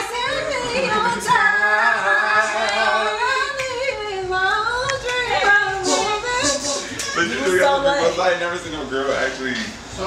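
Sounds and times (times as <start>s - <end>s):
women singing unaccompanied: 0.0s - 8.1s.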